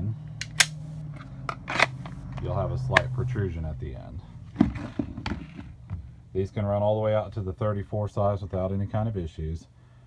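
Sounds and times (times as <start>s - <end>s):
pistol clicking into plastic holster: 0.4s - 2.2s.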